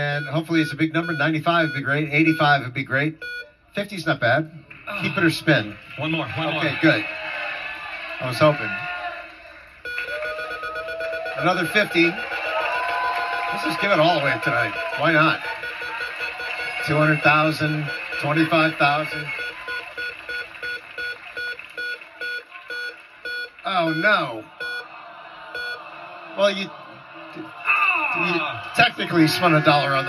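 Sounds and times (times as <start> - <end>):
game wheel electronic beeps: 0.0 - 2.5, 3.2 - 3.5, 9.8 - 24.8, 25.6 - 25.8
studio audience noise: 0.0 - 30.0.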